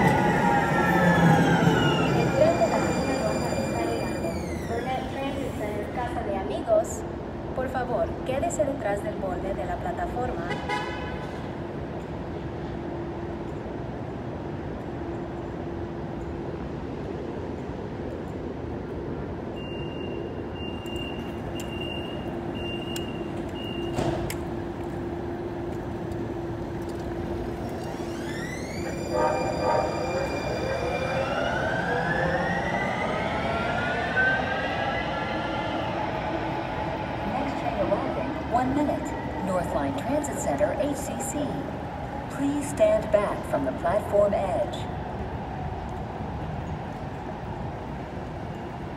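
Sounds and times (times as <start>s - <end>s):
electric train drive whine: 0.0s - 7.5s, 18.3s - 48.9s
low hum of street noise: 0.0s - 48.9s.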